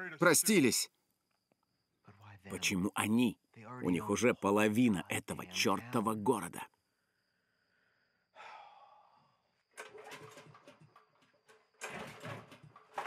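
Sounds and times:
quiet knocks and rustling: 0:09.7 - 0:13.0.

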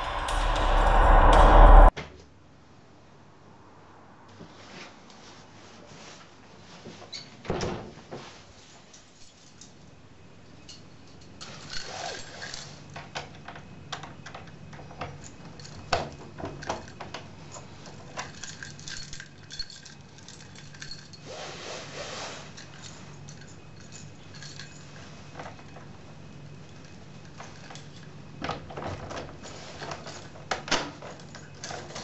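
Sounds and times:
keys jangling: 0:14.4 - 0:21.3, 0:22.5 - 0:25.8.

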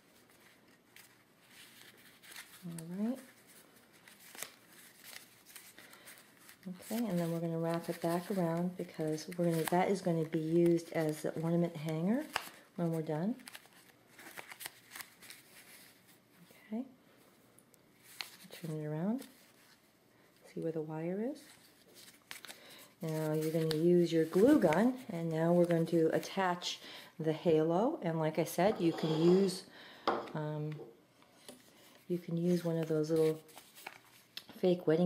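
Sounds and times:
cloth rustling: 0:00.0 - 0:11.4, 0:12.2 - 0:16.5, 0:17.2 - 0:20.5, 0:31.6 - 0:34.4.

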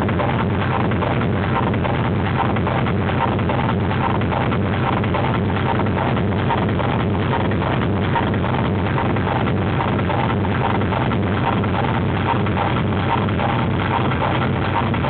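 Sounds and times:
fast kick-drum beat: 0:00.0 - 0:15.0
hard techno music: 0:00.0 - 0:15.0.

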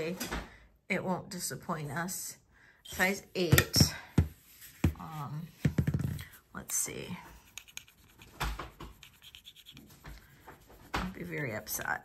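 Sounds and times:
ring scraping on stone: 0:07.4 - 0:10.0.

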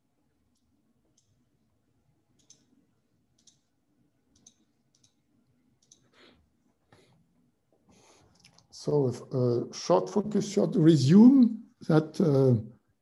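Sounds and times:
faint sharp clicks: 0:05.8 - 0:06.1.

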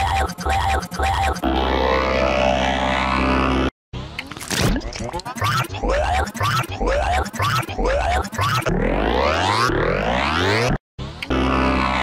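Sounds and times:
buzzing electronic drone music: 0:00.0 - 0:03.7, 0:05.2 - 0:12.0.

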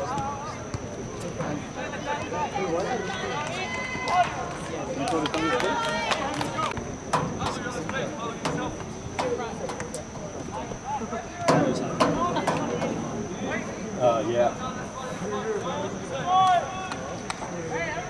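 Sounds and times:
players and spectators shouting: 0:01.8 - 0:09.6, 0:14.5 - 0:18.0.

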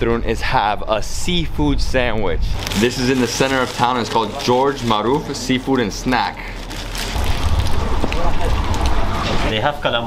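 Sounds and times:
wind buffeting microphone: 0:07.1 - 0:09.7.

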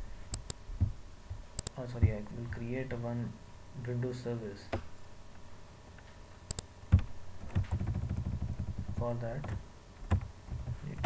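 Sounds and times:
mouse clicks: 0:00.3 - 0:00.6, 0:01.6 - 0:01.8, 0:06.5 - 0:07.1.

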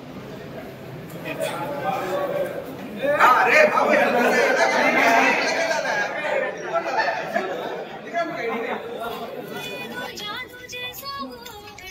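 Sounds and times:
people chattering: 0:00.0 - 0:11.9.

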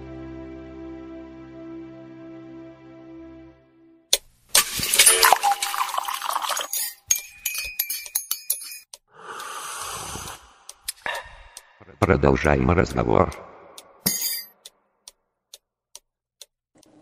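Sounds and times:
clinks and chimes: 0:04.9 - 0:09.0, 0:14.0 - 0:14.7.

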